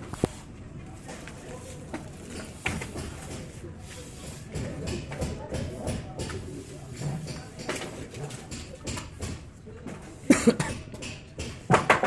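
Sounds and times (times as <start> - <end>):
person coughing: 10.3 - 10.8.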